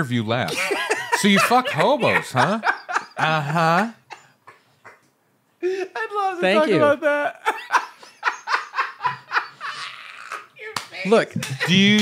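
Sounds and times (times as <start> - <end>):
men laughing hard: 0.5 - 5.0, 5.6 - 10.6, 11.4 - 12.0.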